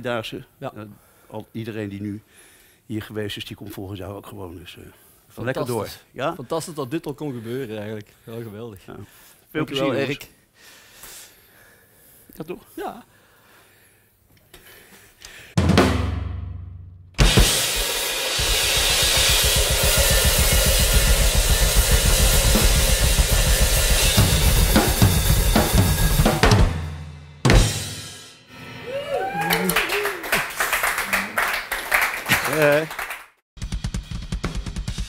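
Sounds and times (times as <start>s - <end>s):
big drum hit ringing: 15.6s - 28.1s
rapid drumming: 15.6s - 28.2s, 33.6s - 35.0s
crashing cymbals: 17.2s - 26.3s.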